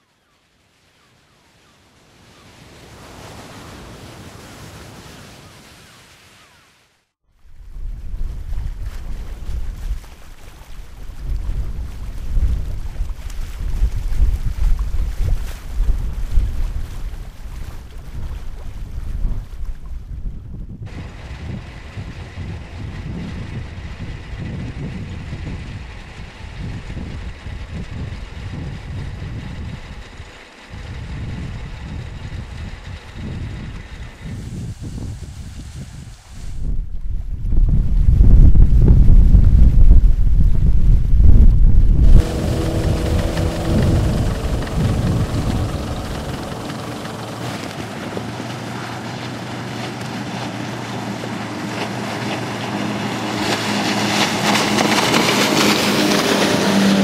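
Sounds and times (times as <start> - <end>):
wind buffeting microphone: 7.4 - 57.0
outboard engine humming: 7.5 - 35.3, 40.9 - 57.0.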